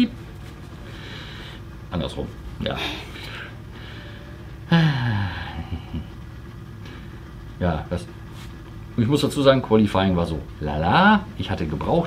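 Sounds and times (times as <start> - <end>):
motorcycle engines idling: 0.0 - 12.0.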